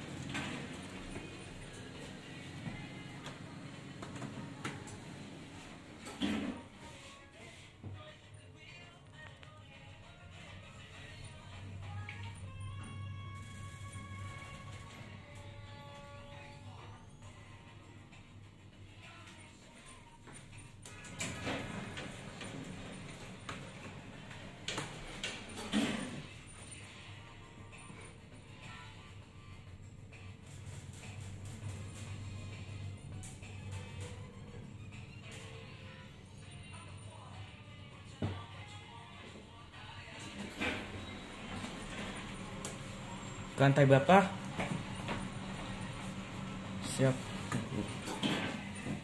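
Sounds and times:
background music: 0.0s - 49.0s.

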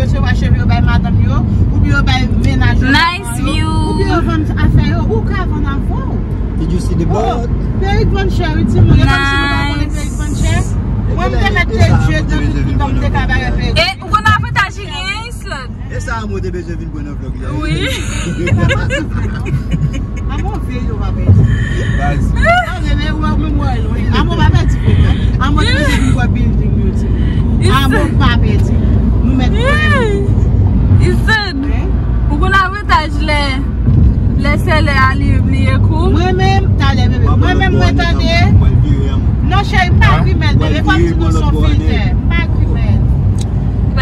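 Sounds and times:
car road and engine rumble: 0.0s - 44.0s.

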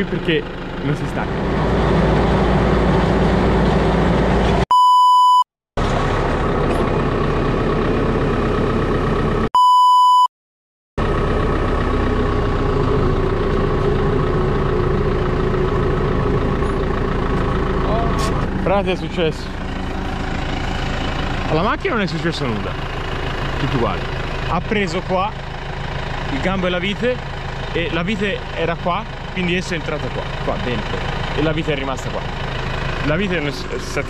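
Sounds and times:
tractor engine running: 0.0s - 4.7s, 5.8s - 9.5s, 11.0s - 34.0s
censor bleep: 4.7s - 5.5s, 9.6s - 10.3s.

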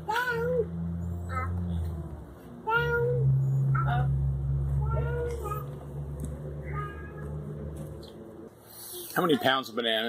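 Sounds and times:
steady low hum: 0.0s - 9.0s
swing squeaking: 0.1s - 2.0s, 2.7s - 6.0s, 6.6s - 8.4s.

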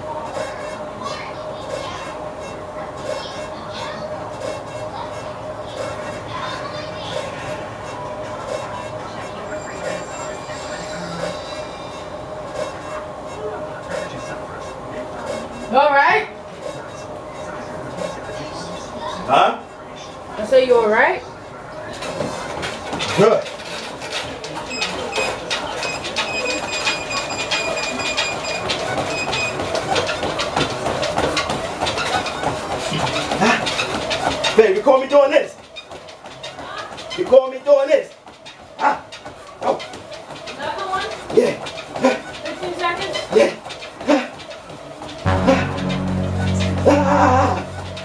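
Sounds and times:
feet pounding treadmill belt: 0.0s - 10.5s, 11.1s - 19.6s, 21.8s - 45.3s
treadmill running: 0.0s - 19.7s, 21.8s - 48.0s
machine running with soft beat: 45.0s - 48.0s
thin high whine: 45.3s - 48.0s.

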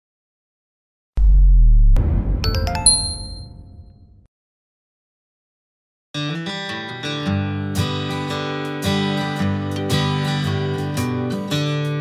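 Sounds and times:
bright chime tones: 2.4s - 4.0s.

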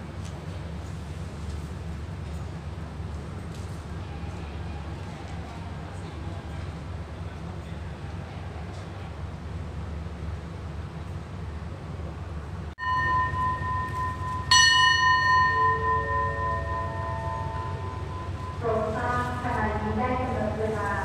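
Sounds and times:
low hum of train: 0.0s - 21.0s
station bell ringing: 12.8s - 21.0s.

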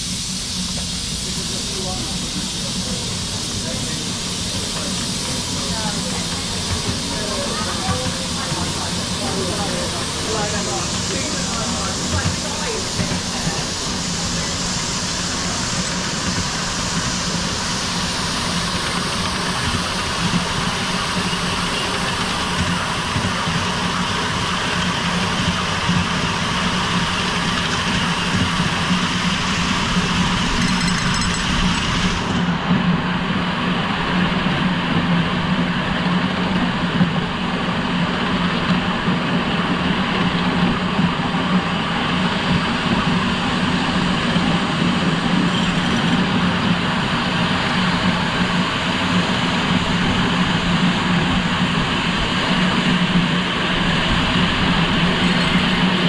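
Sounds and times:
high steam hiss: 0.0s - 56.0s
steam locomotive rumbling on track: 0.0s - 56.0s.

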